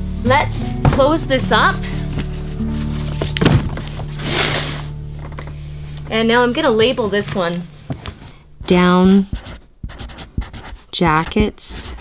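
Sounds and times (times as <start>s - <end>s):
soft background music: 0.0s - 12.0s
plastic case lid thunk: 3.3s - 3.9s.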